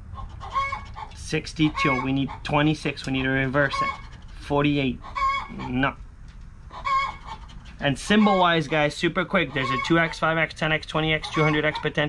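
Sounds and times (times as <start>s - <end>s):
hen squawking: 0.2s - 2.8s, 3.4s - 4.2s, 4.8s - 6.0s, 6.7s - 10.4s, 11.1s - 12.0s.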